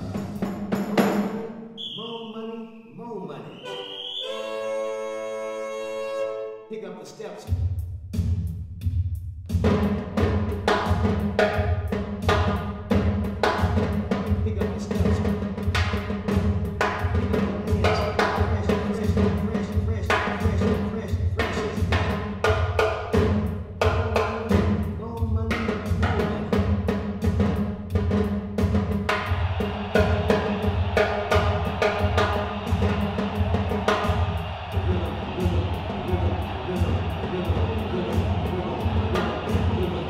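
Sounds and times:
drums played with sticks: 0.0s - 1.6s, 7.5s - 40.0s.

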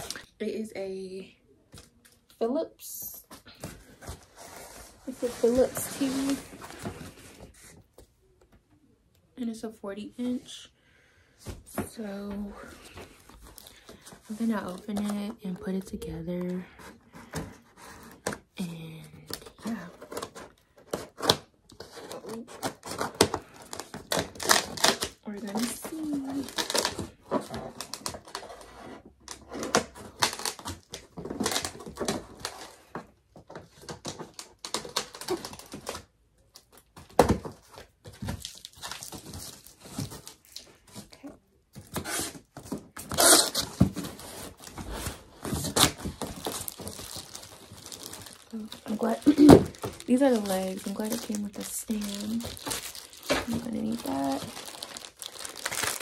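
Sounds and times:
tape and cardboard tearing: 20.0s - 27.0s, 41.9s - 47.3s, 48.8s - 51.4s
plastic bags crinkling: 22.3s - 28.4s, 37.7s - 41.0s, 42.5s - 56.0s.

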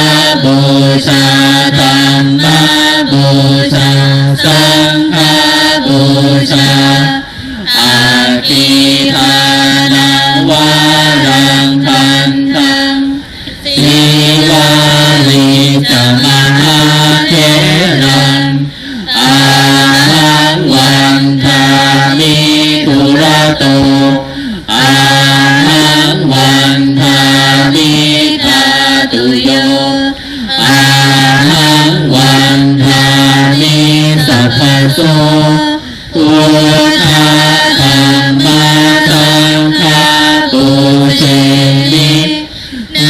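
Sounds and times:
monk chanting into a microphone: 0.0s - 43.0s.

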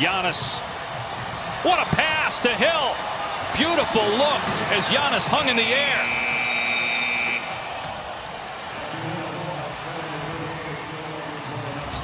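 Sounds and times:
basketball court background noise: 0.0s - 12.0s
arena horn: 5.4s - 7.8s.

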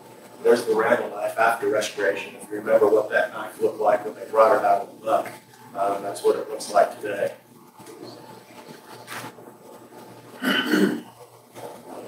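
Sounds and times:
person coughing: 10.4s - 11.1s.

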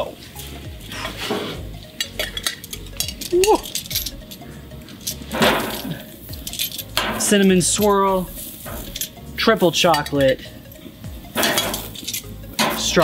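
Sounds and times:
metal tongs clinking on grill: 1.8s - 13.0s.

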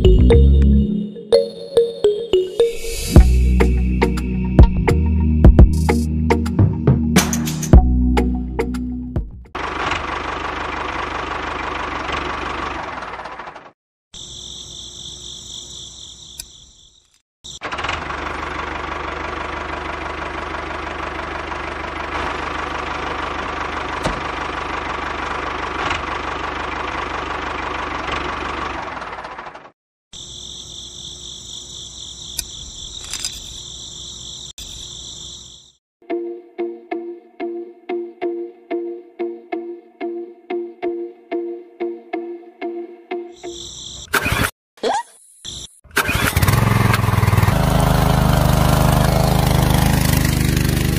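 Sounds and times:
toy tractor motor chugging: 17.5s - 24.0s, 46.0s - 50.9s.

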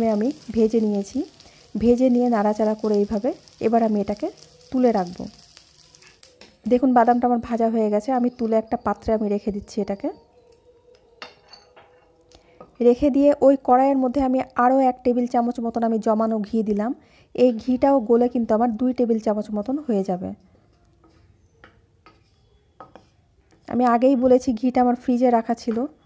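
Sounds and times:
spatula scraping a wok: 3.1s - 6.4s, 21.0s - 23.7s
wooden spatula scraping pan: 22.1s - 23.2s
woman speaking: 23.7s - 25.9s.

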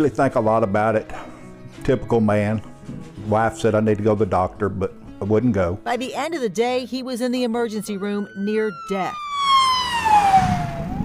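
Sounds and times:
emergency siren wailing: 7.5s - 11.0s.

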